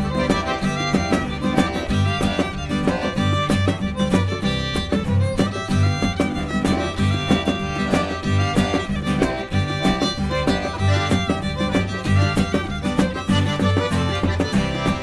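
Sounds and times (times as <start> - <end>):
acoustic guitar: 0.0 - 15.0
button accordion: 0.0 - 15.0
drum kit beat: 0.0 - 15.0
fiddle: 0.0 - 15.0
upright bass: 0.0 - 15.0.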